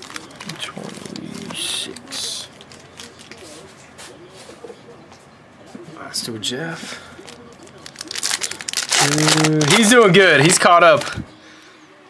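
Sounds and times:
foil wrappers crinkling: 0.0 - 3.8, 7.2 - 11.2
low voice murmuring: 0.2 - 4.9
sharp burst of crackle: 7.9 - 9.9.

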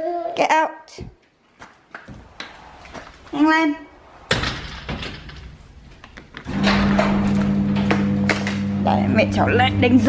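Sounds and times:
door banging shut: 4.2 - 8.6
garage door opener motor hum: 6.4 - 10.0.

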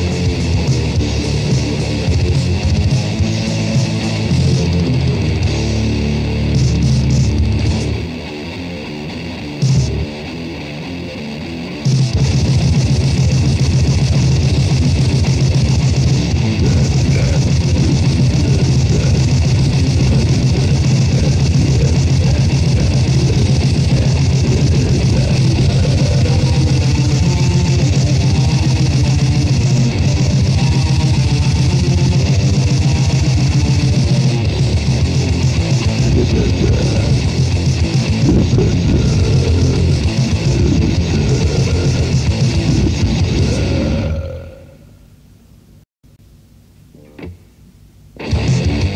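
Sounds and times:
metal band with distorted guitars: 0.0 - 44.9, 48.2 - 48.9.

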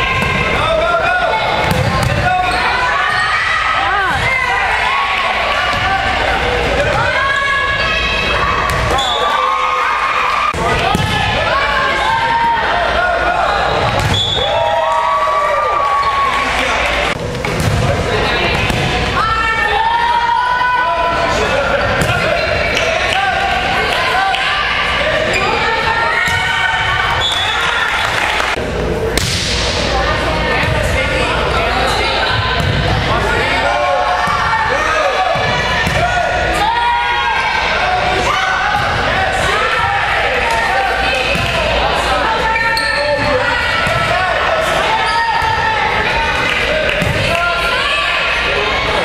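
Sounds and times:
players and spectators calling: 0.0 - 49.0
volleyball slaps echoing: 1.5 - 2.4, 8.6 - 9.2, 10.5 - 11.5, 13.8 - 14.8, 17.1 - 19.2, 21.9 - 24.4, 28.2 - 31.0, 32.3 - 33.2, 35.3 - 36.2, 40.4 - 41.8, 43.7 - 44.2, 46.2 - 47.6
volleyball being struck: 29.1 - 29.8.

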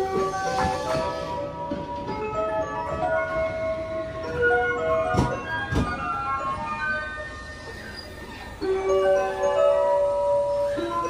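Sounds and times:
train wheels clacking on rail joint: 0.0 - 3.4, 4.3 - 6.2
electronic chime melody: 2.3 - 11.0.

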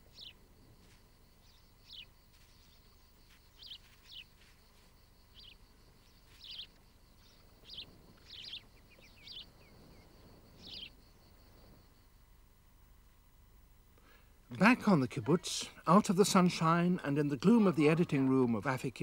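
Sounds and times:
high bird chirps: 6.3 - 9.7.

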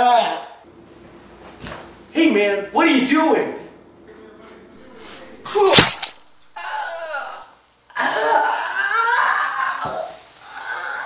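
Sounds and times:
person's loud vocal burst: 4.8 - 8.4.

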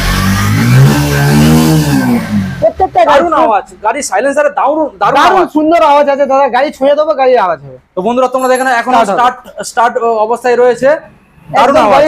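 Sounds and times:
motorcycle engine revving: 0.0 - 3.2.

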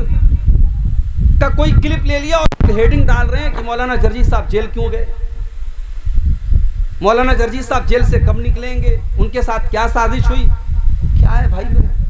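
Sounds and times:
deep uneven rumble: 0.0 - 12.0.

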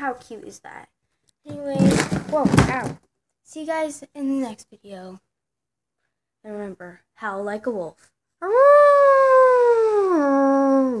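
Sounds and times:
person howling like a wolf: 8.4 - 11.0.

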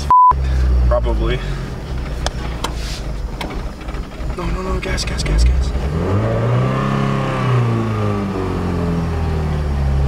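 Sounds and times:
car engine low drone: 0.0 - 10.0.

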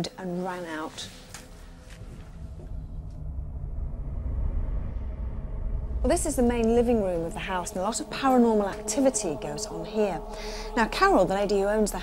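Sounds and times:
deep low rumble: 0.9 - 12.0.

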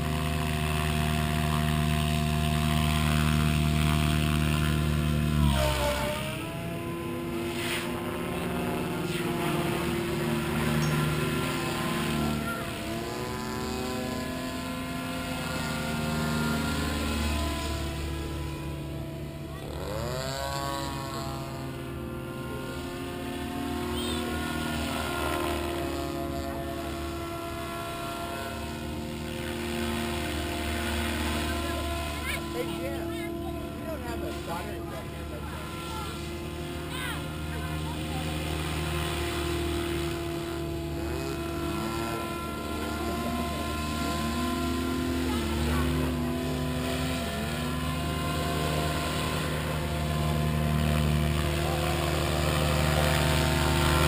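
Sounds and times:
model helicopter rotor whine: 0.0 - 54.0.

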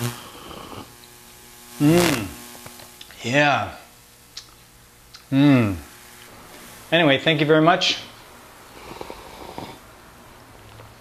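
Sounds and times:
breathing and mouth sounds: 8.7 - 9.8.

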